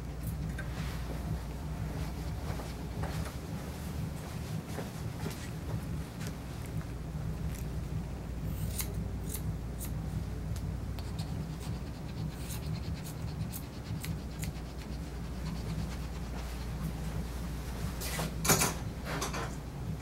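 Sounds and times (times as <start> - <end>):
grooming shears snipping hair: 8.5 - 17.2.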